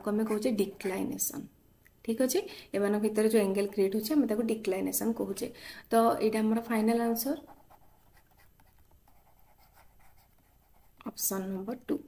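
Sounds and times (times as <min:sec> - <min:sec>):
woman speaking: 0:00.0 - 0:07.6, 0:11.0 - 0:12.0
stylus scratching on tablet: 0:07.0 - 0:11.4.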